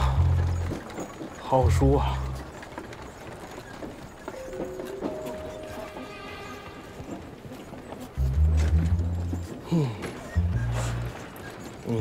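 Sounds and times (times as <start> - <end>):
held musical notes: 4.3 - 11.6.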